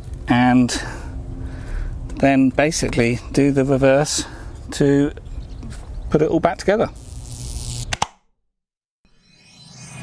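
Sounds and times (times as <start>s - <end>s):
outdoor background noise: 0.0s - 8.0s
sharp clicks: 7.8s - 8.2s.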